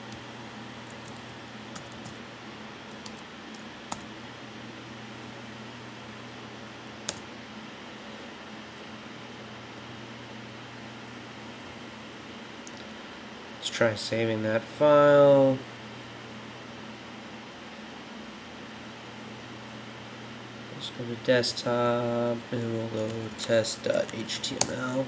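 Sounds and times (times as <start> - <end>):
computer hum and hiss: 0.0 - 25.0.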